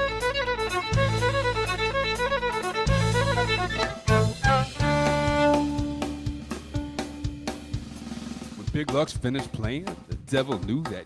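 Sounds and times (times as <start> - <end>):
fiddle bowing long notes: 0.0 - 8.1
drum kit beat: 0.0 - 11.0
person's voice: 8.6 - 11.0.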